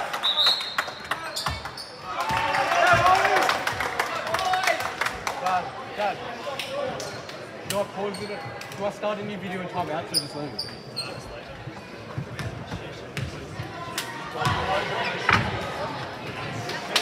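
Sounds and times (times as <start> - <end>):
sneakers squeaking: 0.4 - 2.1, 8.0 - 8.7, 9.8 - 13.4.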